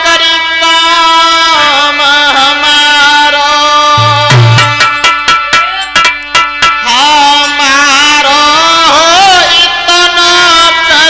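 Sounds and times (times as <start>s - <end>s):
man singing devotional song: 0.0s - 5.0s, 6.8s - 11.0s
sustained accompaniment: 4.0s - 7.1s.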